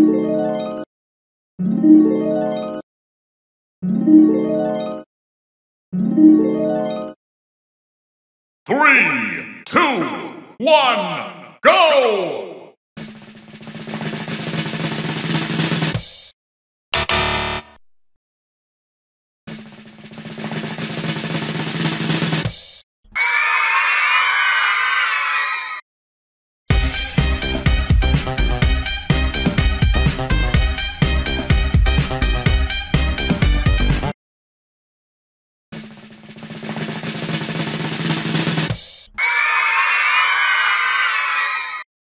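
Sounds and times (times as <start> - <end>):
drum roll: 13.0 - 16.1, 19.5 - 22.6, 35.8 - 38.8.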